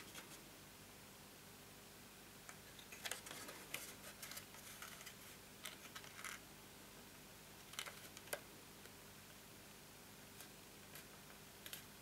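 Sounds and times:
cardstock crackling and rustling: 2.9 - 6.4.

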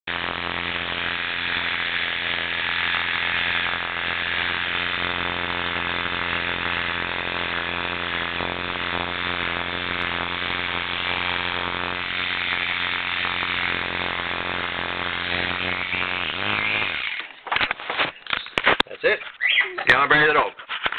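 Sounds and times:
motor winding down: 0.1 - 17.7
electric clippers buzzing: 0.1 - 18.1.

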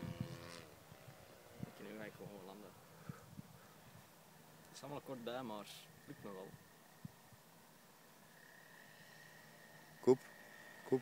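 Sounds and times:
faint outdoor ambience: 0.0 - 11.0.

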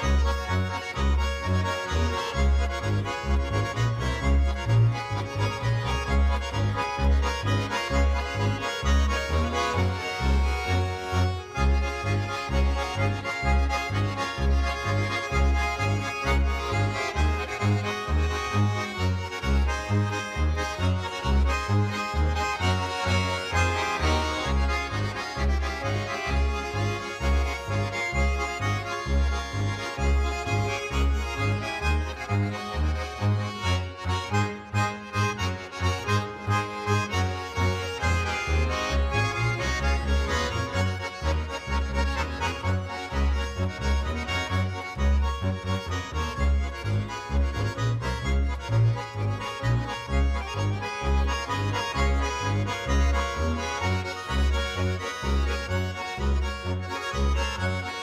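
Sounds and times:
button accordions playing folk dance: 0.0 - 58.0
upright bass low notes: 0.0 - 58.0.

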